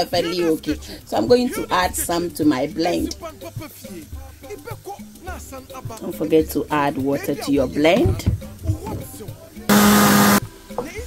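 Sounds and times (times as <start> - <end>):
blender motor running: 9.7 - 10.4.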